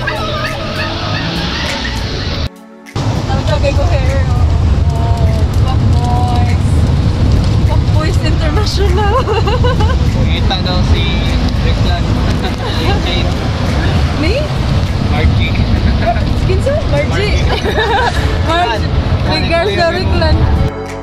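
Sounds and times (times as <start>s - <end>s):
vehicle engine and road rumble: 0.0s - 20.7s
people chatting: 3.3s - 6.8s, 7.7s - 20.5s.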